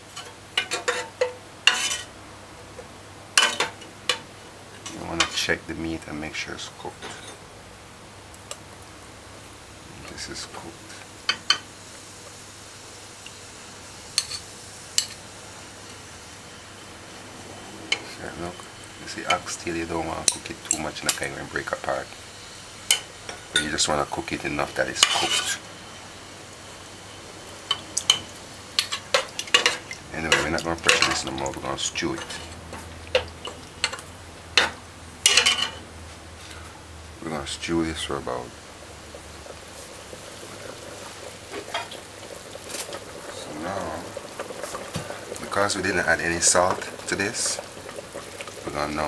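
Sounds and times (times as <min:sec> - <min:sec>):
faint steady hiss: 0:00.0 - 0:49.0
metal ladle stirring in pot: 0:00.2 - 0:02.1, 0:25.0 - 0:25.6.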